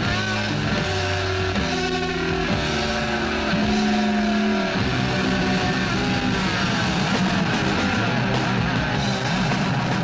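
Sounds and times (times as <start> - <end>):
electric guitar feedback: 0.0 - 10.0.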